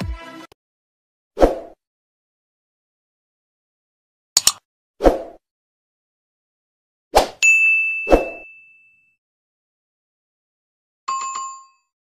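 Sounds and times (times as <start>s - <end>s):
button clicks: 4.4s - 4.6s.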